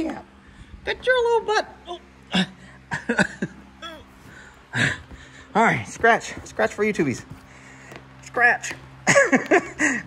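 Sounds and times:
man laughing: 2.3s - 5.6s, 9.0s - 10.0s.

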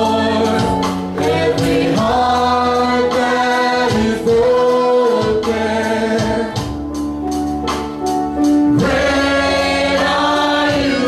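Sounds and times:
singers and band performing: 0.0s - 7.4s, 8.4s - 11.0s.

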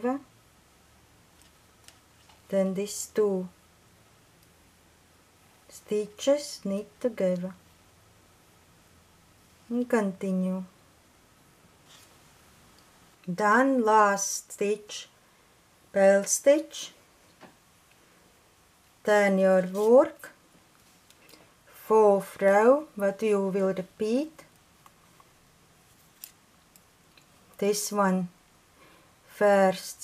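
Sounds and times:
knitting needles handling: 25.9s - 27.3s.

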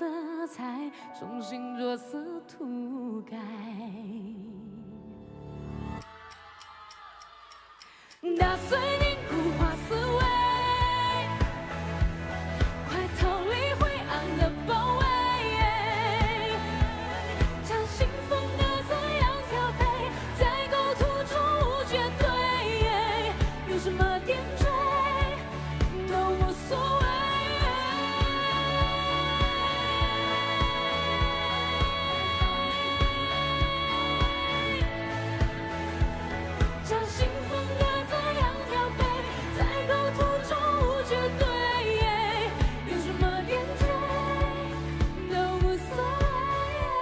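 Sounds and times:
woman singing pop ballad: 0.0s - 5.1s, 7.9s - 47.0s
band backing music: 8.4s - 47.0s.

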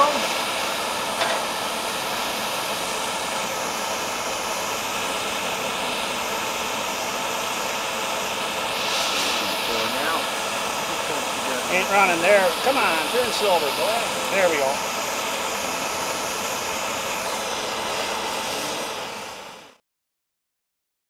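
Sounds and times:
gas torch hissing: 0.0s - 19.8s.

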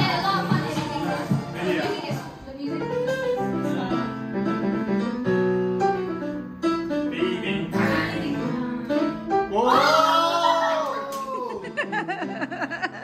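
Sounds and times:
acoustic guitar and singing on tv: 0.0s - 3.0s, 7.0s - 10.9s.

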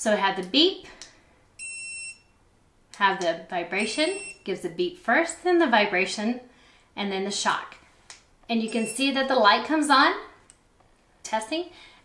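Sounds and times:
high-pitched electronic beep: 8.7s - 9.1s.

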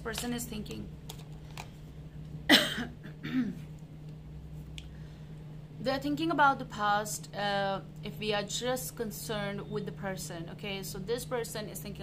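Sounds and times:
woman coughing: 2.5s - 3.7s.

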